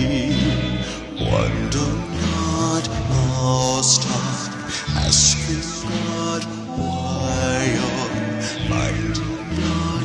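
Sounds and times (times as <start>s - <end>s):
held bass notes: 0.0s - 10.0s.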